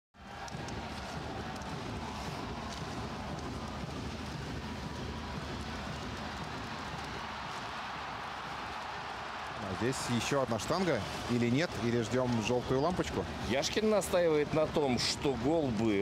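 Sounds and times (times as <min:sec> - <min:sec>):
arena crowd roar: 0:00.2 - 0:16.0
hockey sticks and puck clacking: 0:00.4 - 0:07.6.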